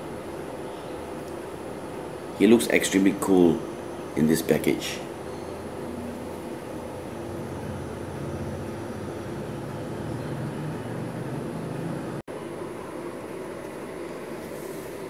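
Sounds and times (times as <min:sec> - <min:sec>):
background hum and hiss: 0:00.0 - 0:15.0.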